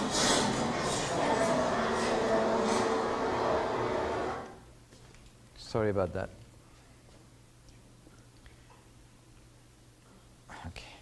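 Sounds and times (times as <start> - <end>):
sustained soundtrack tones: 0.0 - 4.7.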